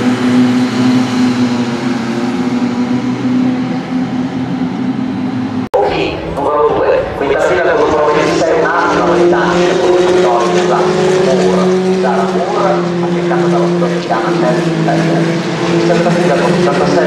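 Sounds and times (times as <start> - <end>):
race car engine droning: 0.0 - 17.0
person talking: 5.8 - 17.0.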